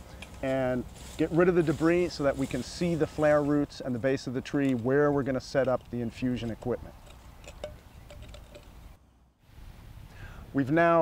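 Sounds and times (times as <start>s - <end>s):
rake scraping mulch and soil: 0.0s - 8.8s.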